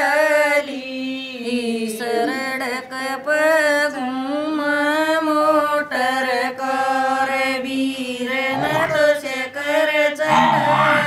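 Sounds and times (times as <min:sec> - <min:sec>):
women singing unaccompanied: 0:00.0 - 0:11.0.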